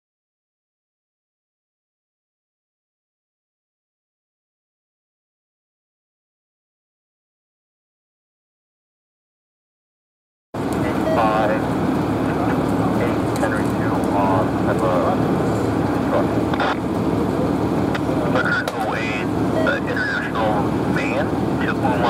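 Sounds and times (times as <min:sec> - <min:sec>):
distant voices calling out: 0:10.6 - 0:22.0
fire rumble and hum: 0:10.6 - 0:22.0.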